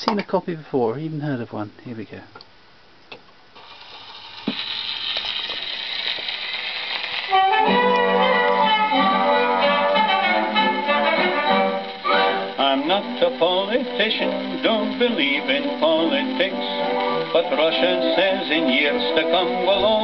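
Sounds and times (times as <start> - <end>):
record surface hiss: 0.0 - 20.0
man singing: 12.5 - 20.0.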